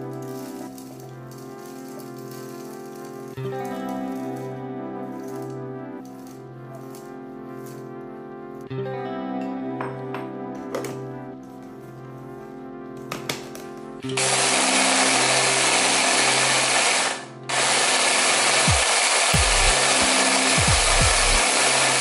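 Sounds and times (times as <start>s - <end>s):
food chopper grinding: 14.0s - 22.0s.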